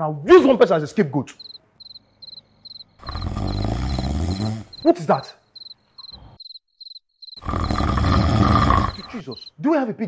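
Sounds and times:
crickets chirping: 1.3s - 9.6s
growling pig-like grunt: 3.0s - 4.7s, 7.4s - 9.4s.

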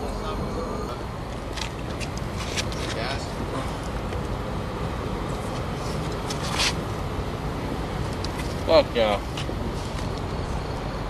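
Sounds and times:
indistinct voices: 0.0s - 1.4s
steady low rumble: 0.0s - 11.0s.

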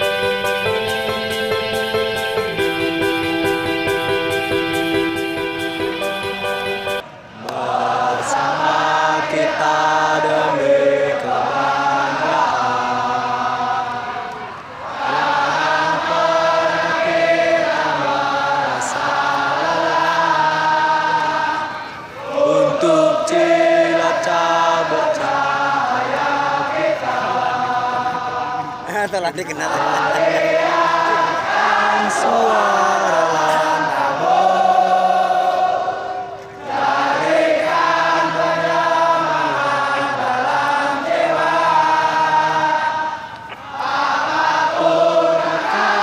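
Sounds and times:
crowd singing in unison: 0.0s - 46.0s.

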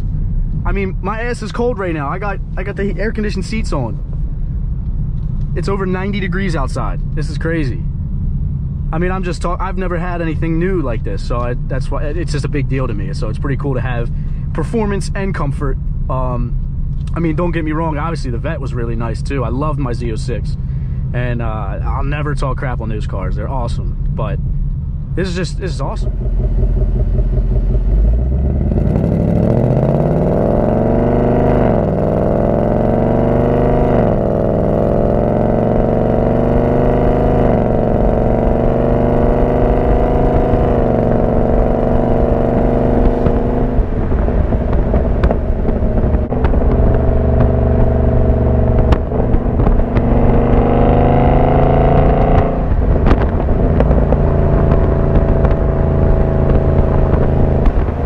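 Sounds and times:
engine note dropping at upshifts: 24.2s - 58.0s
car engine accelerating hard: 25.3s - 58.0s.

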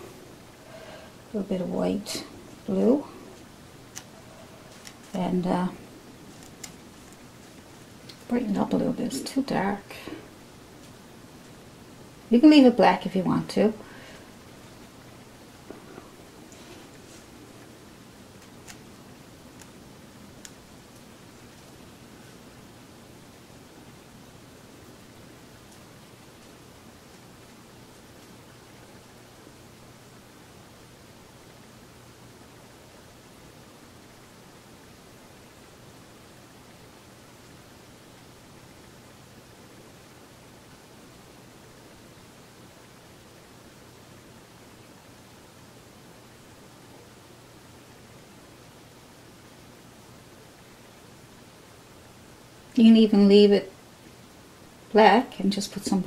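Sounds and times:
faint hiss: 0.0s - 56.0s
low even hum: 0.0s - 56.0s.

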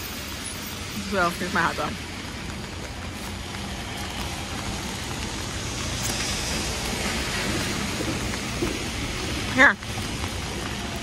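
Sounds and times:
steady rain falling: 0.0s - 11.0s
traffic hiss on wet streets: 0.0s - 11.0s.

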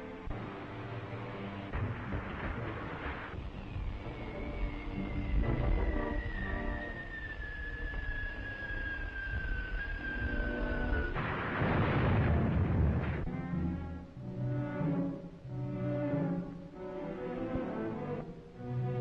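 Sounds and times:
explosion: 1.7s - 4.0s, 10.9s - 13.3s
falling whistling tone: 3.4s - 11.2s
dramatic orchestral music: 12.0s - 19.0s.

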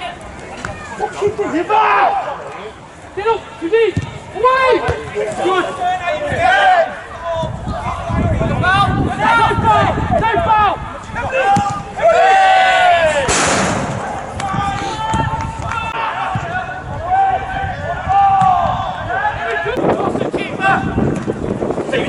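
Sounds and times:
footballers shouting: 0.0s - 21.1s.

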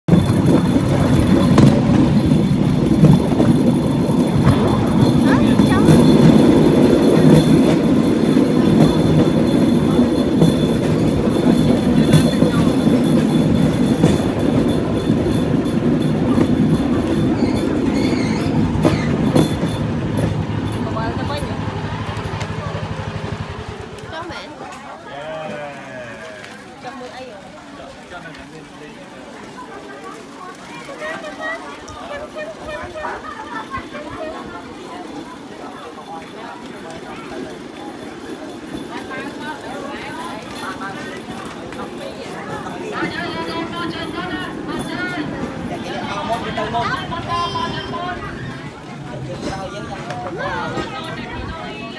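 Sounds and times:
wooden platform rattling over track: 0.1s - 24.0s.

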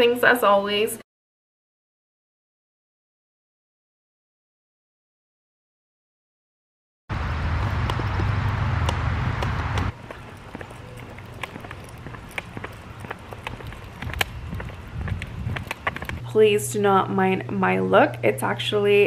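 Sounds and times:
loud steady noise: 7.1s - 10.0s
footsteps on asphalt: 7.1s - 16.3s.

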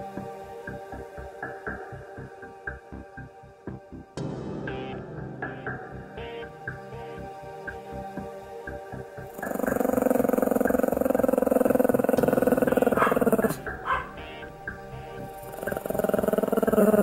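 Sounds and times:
background music: 0.0s - 17.0s
dog growling: 9.3s - 14.2s, 15.4s - 17.0s.

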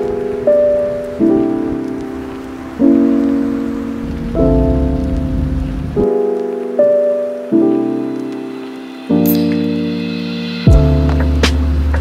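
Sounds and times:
gentle music of sustained chords: 0.0s - 12.0s
rain: 0.0s - 12.0s
low rumble: 4.2s - 6.0s.

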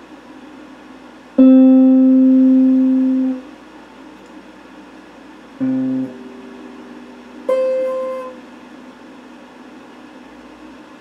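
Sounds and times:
electric guitar notes ringing: 1.4s - 3.4s, 5.6s - 8.8s
steady hiss: 5.1s - 11.0s.

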